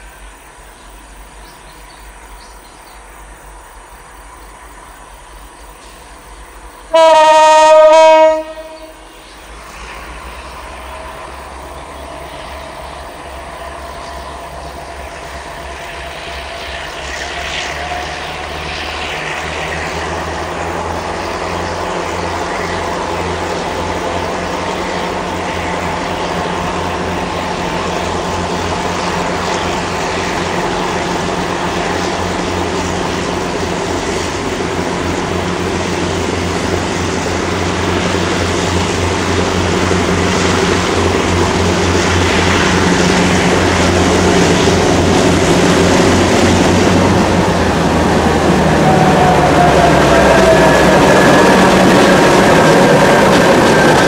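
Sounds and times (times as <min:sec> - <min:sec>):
locomotive engines droning: 0:00.0 - 0:54.0
train wheels on rails: 0:00.0 - 0:54.0
train horn blast: 0:06.9 - 0:09.1, 0:48.4 - 0:53.1.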